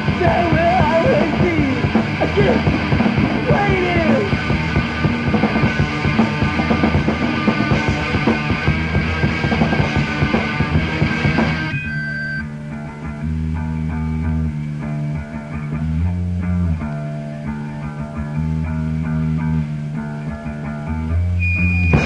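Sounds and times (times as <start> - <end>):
bass guitar low notes: 0.0 - 22.0
picked guitar: 0.0 - 22.0
rock band playing: 0.0 - 22.0.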